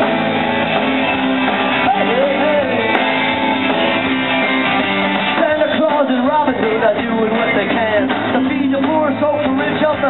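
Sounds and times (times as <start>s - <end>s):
electric guitar melody: 0.0s - 10.0s
rock band playing: 0.0s - 10.0s.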